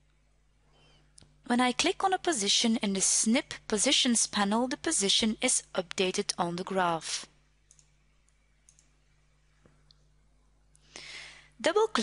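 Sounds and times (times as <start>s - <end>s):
computer mouse clicks: 7.6s - 9.0s.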